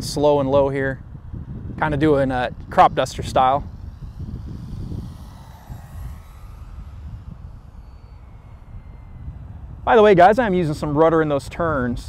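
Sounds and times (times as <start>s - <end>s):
wind rumble on microphone: 0.0s - 12.0s
rc plane motor whine: 0.1s - 12.0s.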